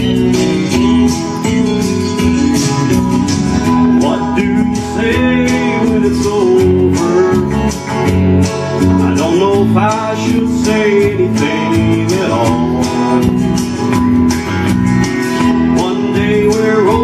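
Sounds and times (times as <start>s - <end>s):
electric guitar country ballad: 0.0s - 17.0s.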